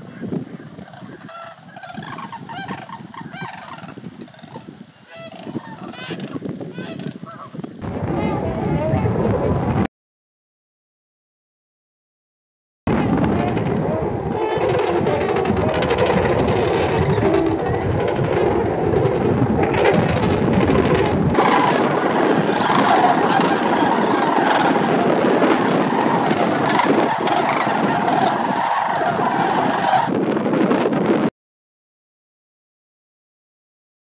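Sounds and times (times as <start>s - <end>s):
cranes calling: 0.0s - 7.6s, 21.4s - 30.1s
geese honking: 0.0s - 7.6s, 21.4s - 30.1s.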